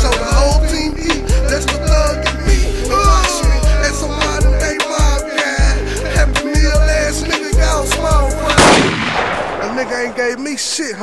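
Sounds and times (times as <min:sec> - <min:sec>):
hip-hop beat: 0:00.0 - 0:08.6
loud gunshot: 0:08.6 - 0:10.3.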